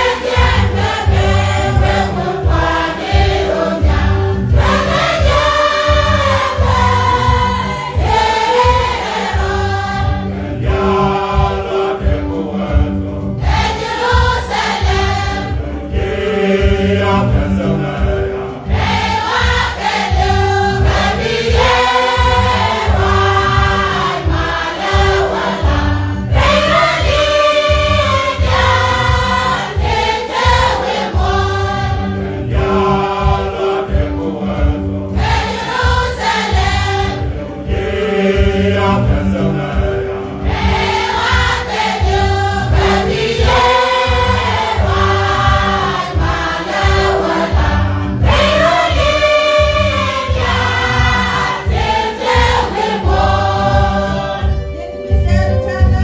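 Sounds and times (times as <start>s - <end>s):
choir singing a hymn: 0.0s - 55.7s
low keyboard accompaniment: 0.0s - 56.0s.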